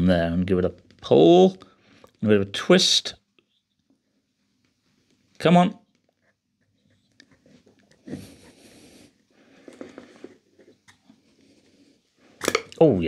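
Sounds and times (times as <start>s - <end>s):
strained breaths: 8.0s - 10.5s.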